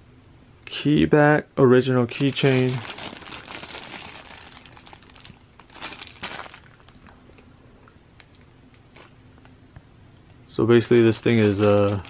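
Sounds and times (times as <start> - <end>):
plastic bag crinkling: 2.2 - 7.4, 8.2 - 9.2, 10.8 - 12.0.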